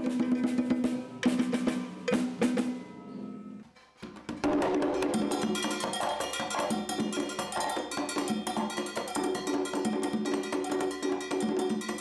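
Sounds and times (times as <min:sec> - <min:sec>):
congas played rapidly: 0:00.0 - 0:03.0, 0:04.0 - 0:12.0
bright metallic percussion: 0:00.0 - 0:12.0.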